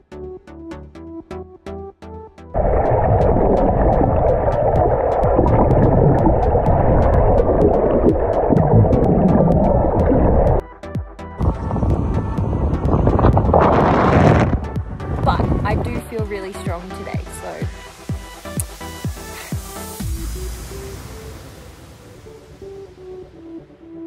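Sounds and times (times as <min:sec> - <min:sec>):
muffled underwater rushing: 0:02.6 - 0:10.6, 0:11.4 - 0:16.8
wind buffeting microphone: 0:11.4 - 0:16.2.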